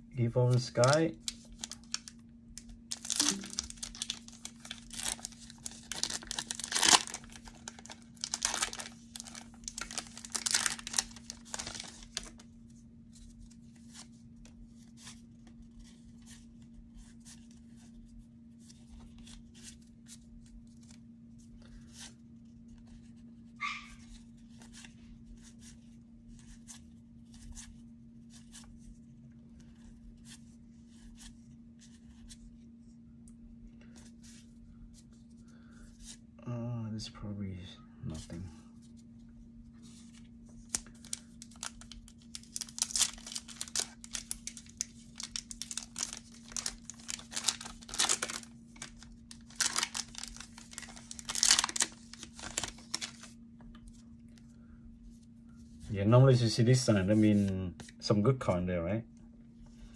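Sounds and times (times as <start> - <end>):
foil pack tearing and crinkling: 0.6 - 2.1, 2.9 - 12.4, 40.6 - 53.3.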